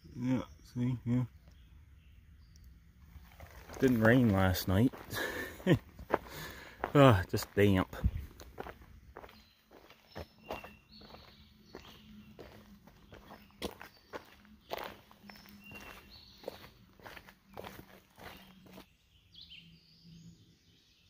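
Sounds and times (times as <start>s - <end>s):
footsteps on a dirt trail: 3.0s - 18.9s.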